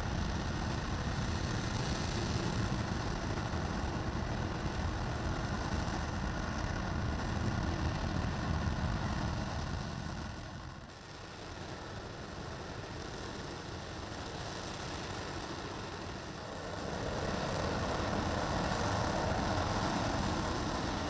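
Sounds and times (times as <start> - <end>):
distant rocket engine roar: 0.0 - 21.0.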